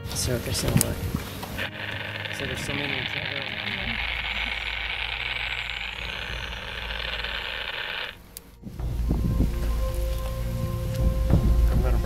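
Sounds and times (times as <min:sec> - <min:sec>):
background music with deep bass: 0:00.0 - 0:12.0
low rumble: 0:00.0 - 0:12.0
high-pitched hiss: 0:00.1 - 0:12.0.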